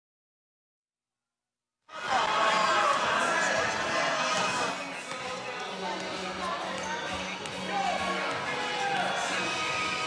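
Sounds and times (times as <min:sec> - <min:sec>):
voices and chatter: 0:01.9 - 0:10.0.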